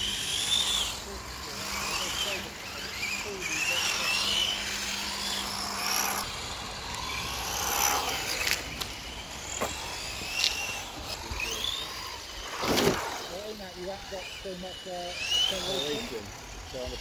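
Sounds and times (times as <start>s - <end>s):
rc car motors whining: 0.0s - 17.0s.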